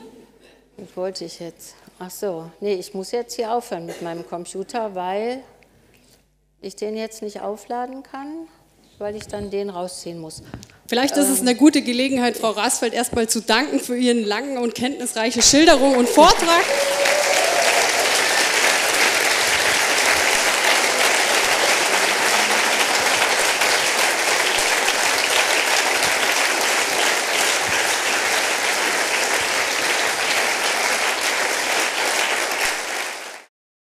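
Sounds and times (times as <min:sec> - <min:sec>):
audience applauding: 0:15.4 - 0:33.5.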